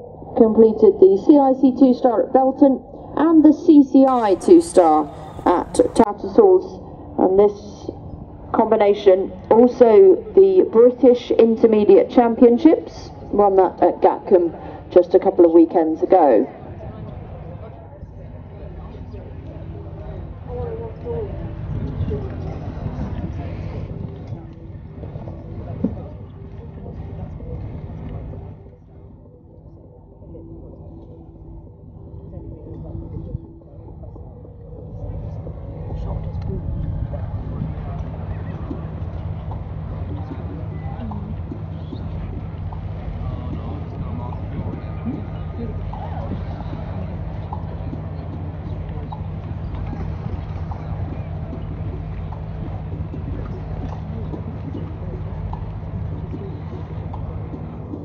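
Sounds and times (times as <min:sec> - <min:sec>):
low mechanical hum: 0:00.0 - 0:58.0
low outdoor rumble: 0:00.0 - 0:58.0
faint murmuring voices: 0:01.0 - 0:58.0.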